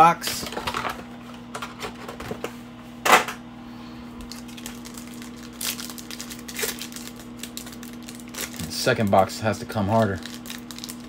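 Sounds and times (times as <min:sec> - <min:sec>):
foil pack crackling: 0:04.2 - 0:11.0
foil pack ripping: 0:04.2 - 0:11.0.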